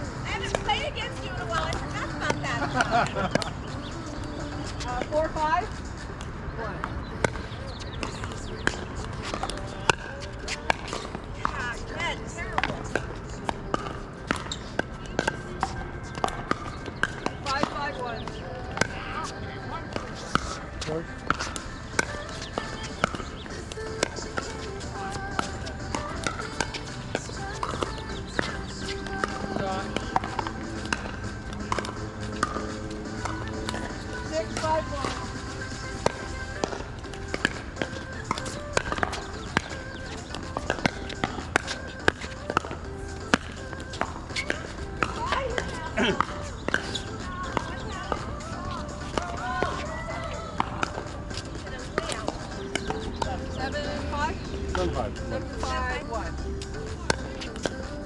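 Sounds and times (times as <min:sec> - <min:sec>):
background music: 0:00.0 - 0:58.0
voices: 0:00.0 - 0:58.0.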